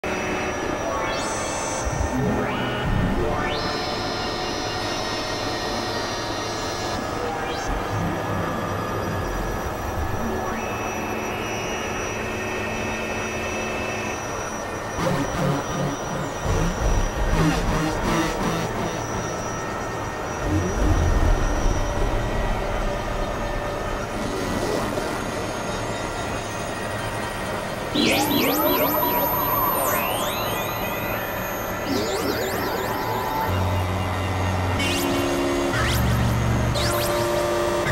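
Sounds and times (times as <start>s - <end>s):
noisy synthesizer drone: 0.0s - 37.9s
high held tones: 27.6s - 34.2s.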